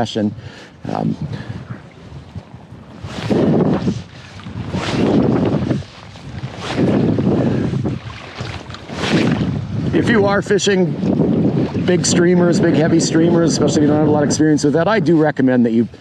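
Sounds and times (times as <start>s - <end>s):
wind buffeting microphone: 0.0s - 16.0s
river water washing: 0.7s - 14.1s.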